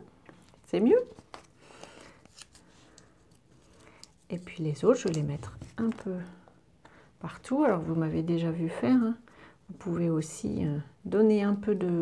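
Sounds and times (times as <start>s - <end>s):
soft rustle: 0.4s - 6.2s.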